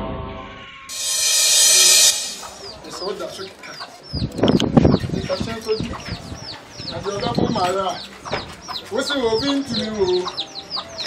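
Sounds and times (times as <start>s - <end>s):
chicks peeping: 3.6s - 11.0s.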